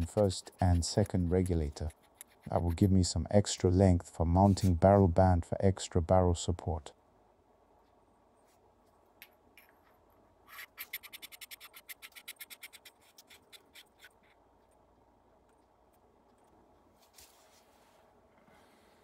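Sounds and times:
metal parts rubbing: 0.0 - 2.9.

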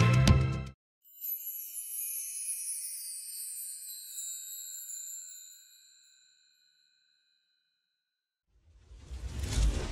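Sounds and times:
high bell-like chime: 1.0 - 8.2
low rumbling whoosh: 8.6 - 9.9.

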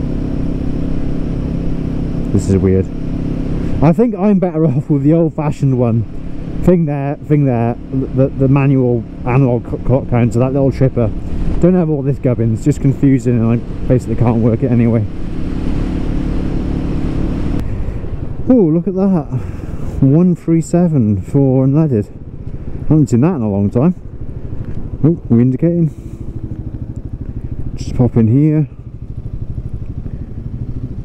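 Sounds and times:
motorcycle engine cruising: 0.0 - 31.0
wind and road noise: 0.0 - 31.0.

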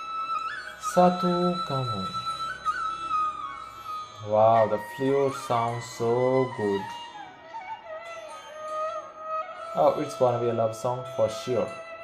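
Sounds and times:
flute playing high notes: 0.0 - 12.0.

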